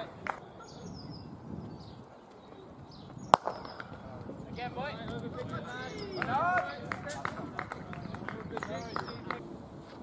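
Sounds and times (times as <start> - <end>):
short sharp claps: 0.2 - 0.4, 6.1 - 9.4
fielders calling encouragement: 2.4 - 9.4.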